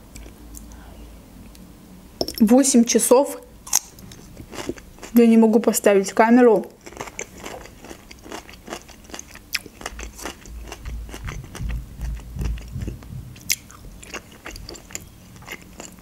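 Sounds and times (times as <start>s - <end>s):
close-up chewing: 3.7s - 5.2s, 6.8s - 16.0s.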